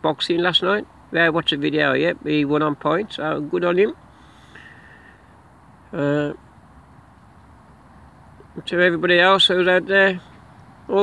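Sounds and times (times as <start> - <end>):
faint background hiss: 0.0 - 11.0
breath through the nose: 4.1 - 5.4.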